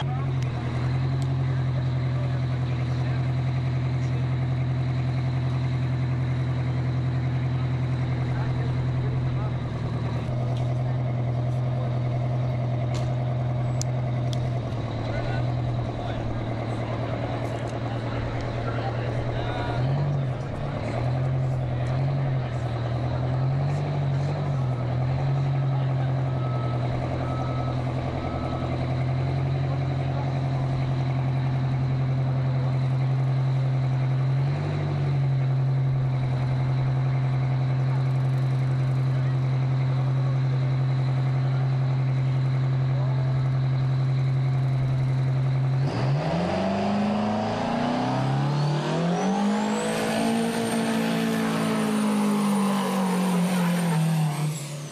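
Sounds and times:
truck engine idling: 0.0 - 54.9.

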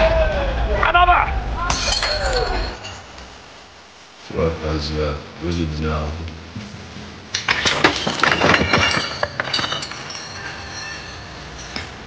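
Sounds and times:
steady low hiss: 0.0 - 12.0
metal ornament clinking: 8.5 - 12.0
faint high ringing: 8.8 - 12.0.

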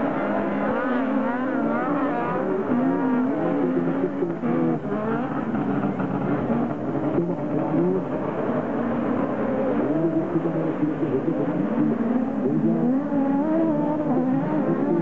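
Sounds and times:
racing buggy engines revving: 0.0 - 15.0.

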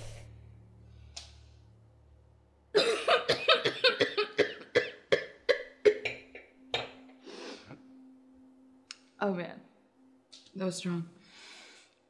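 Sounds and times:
woman coughing: 2.8 - 6.1.

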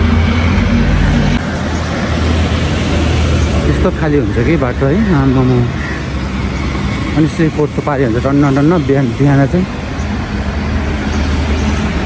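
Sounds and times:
vehicle engines rumbling: 0.0 - 12.0
man talking: 3.6 - 5.8, 7.2 - 9.8.

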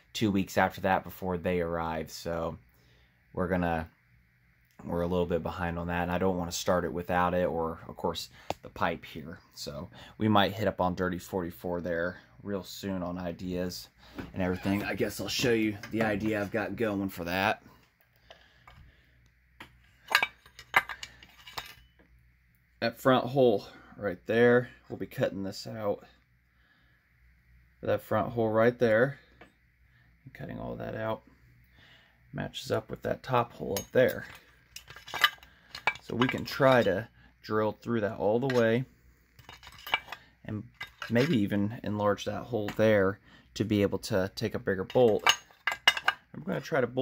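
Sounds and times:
light metallic clinks and knocks: 19.6 - 22.1, 33.6 - 37.0, 39.4 - 41.4, 44.9 - 46.3.

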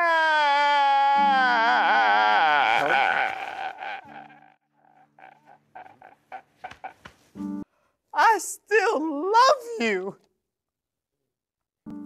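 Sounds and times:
man wailing and sobbing: 0.0 - 6.9.

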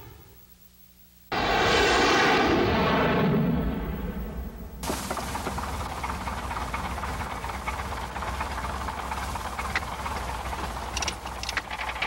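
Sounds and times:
propeller plane engine drone: 0.0 - 12.0
propeller wash rushing: 1.3 - 12.0.

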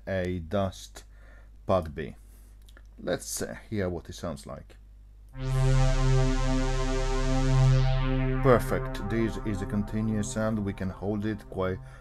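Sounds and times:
sustained low synth pad note: 5.4 - 12.0.

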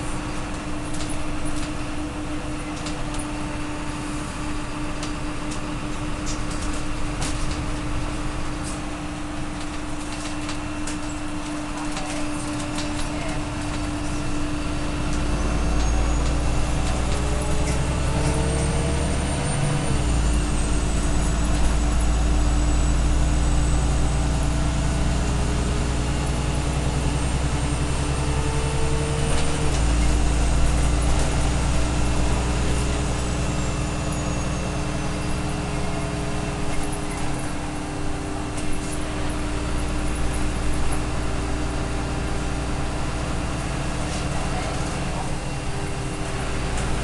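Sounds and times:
bus diesel engine drone: 0.0 - 47.0.

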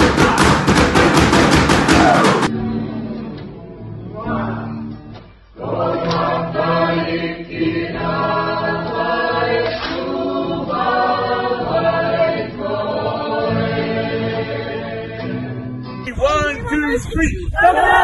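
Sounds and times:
group of voices singing: 5.6 - 15.5, 17.4 - 18.0.

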